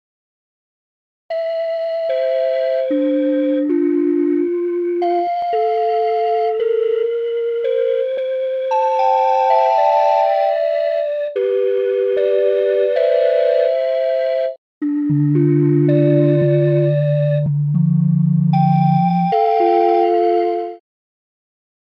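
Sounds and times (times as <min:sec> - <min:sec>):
synthesized flute melody: 0:01.3 - 0:20.8.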